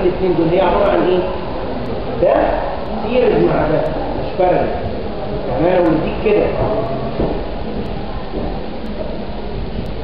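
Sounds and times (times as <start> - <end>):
room noise rumble and hiss: 0.0 - 10.0.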